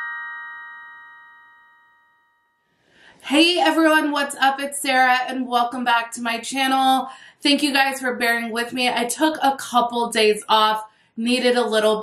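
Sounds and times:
bell-like jingle chord ringing: 0:00.0 - 0:02.6.

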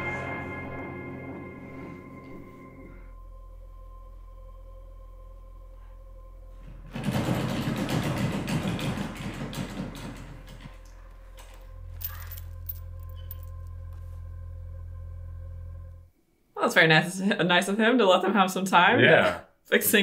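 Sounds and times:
low ambient hum: 0:00.0 - 0:06.9, 0:10.3 - 0:17.4.

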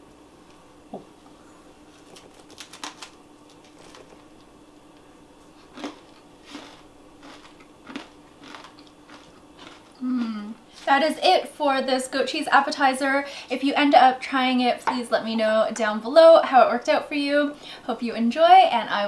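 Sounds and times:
faint steady hum: 0:00.0 - 0:19.0
crackers crunching: 0:01.8 - 0:11.1
person humming mm: 0:10.0 - 0:10.6.

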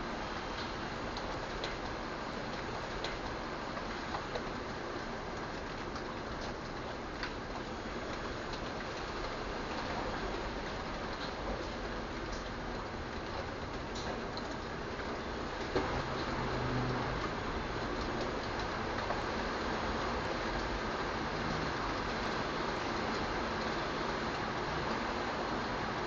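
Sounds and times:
steady rain: 0:00.0 - 0:26.0.

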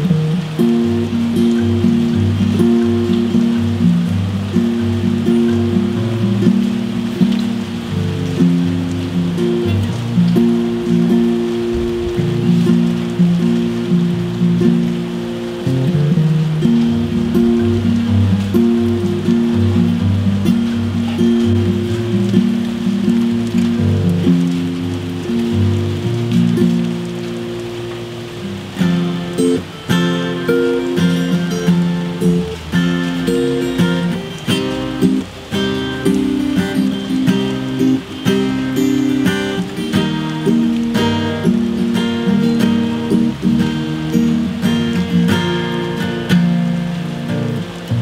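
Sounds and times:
acoustic guitar playing: 0:00.0 - 0:48.0
rain hiss: 0:00.0 - 0:48.0.

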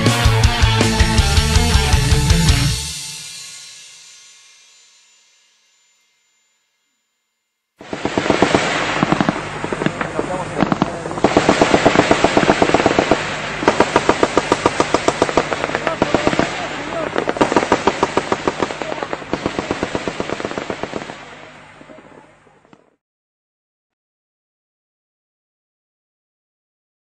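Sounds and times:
automatic machine-gun fire: 0:07.8 - 0:22.0
crackle of shooting: 0:07.8 - 0:22.8
voices: 0:08.8 - 0:22.9.

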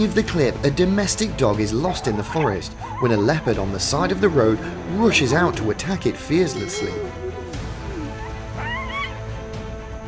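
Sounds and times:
background music: 0:00.0 - 0:10.0
dog yelping: 0:01.8 - 0:03.6, 0:08.0 - 0:09.2.

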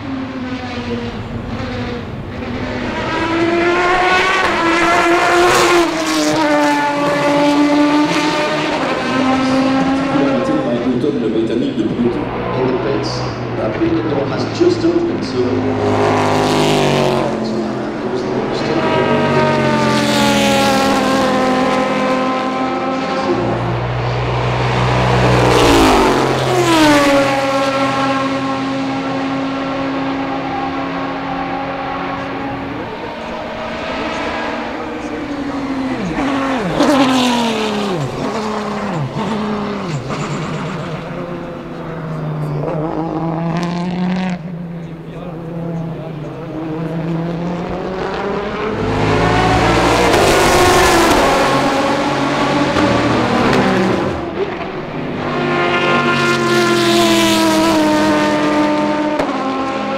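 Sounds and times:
race car engines running hard: 0:00.0 - 0:59.9.

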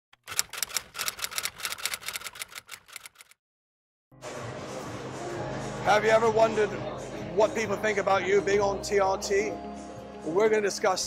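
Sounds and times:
typewriter key clacks: 0:00.2 - 0:03.4.

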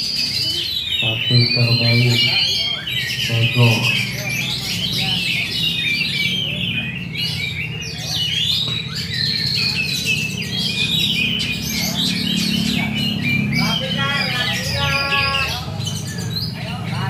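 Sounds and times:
songbirds singing: 0:00.0 - 0:17.0.

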